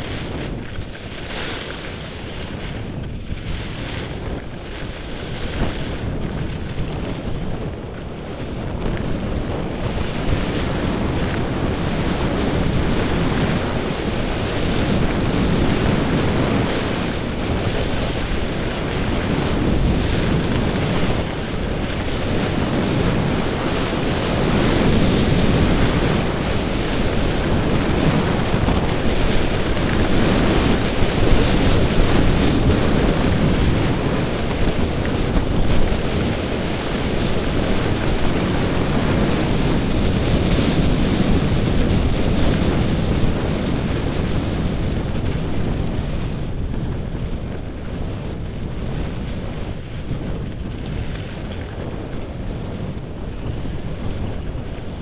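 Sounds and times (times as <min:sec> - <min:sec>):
skis sliding over snow: 0:00.0 - 0:55.0
wind rushing over microphone: 0:00.0 - 0:55.0.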